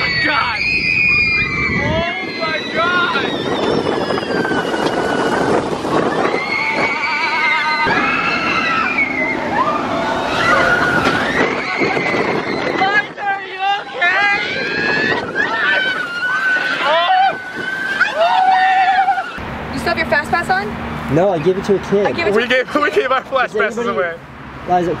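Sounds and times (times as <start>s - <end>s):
riders screaming: 0.0s - 19.4s
rushing noise from ride: 0.0s - 21.5s.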